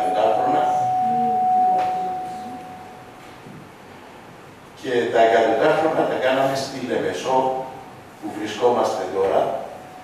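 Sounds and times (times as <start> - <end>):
microphone feedback ringing tone: 0.0 - 3.0.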